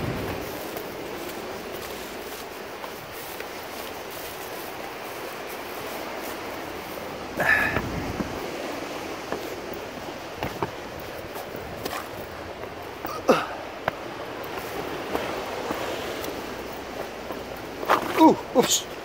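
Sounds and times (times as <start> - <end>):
footsteps on rock and grass: 0.0 - 19.0
sea surf on rocks: 0.0 - 19.0
wind: 0.0 - 19.0
loud scuffing: 10.4 - 12.8.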